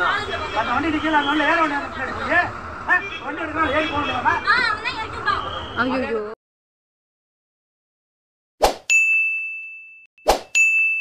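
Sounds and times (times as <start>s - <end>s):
short swish: 8.6s - 8.9s, 10.2s - 10.5s
bright chime ding: 8.9s - 11.0s.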